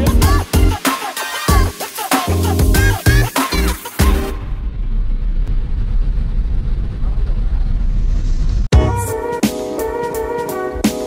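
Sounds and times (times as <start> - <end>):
music: 0.0 - 4.4, 8.7 - 11.0
steady low rumble: 4.3 - 8.7.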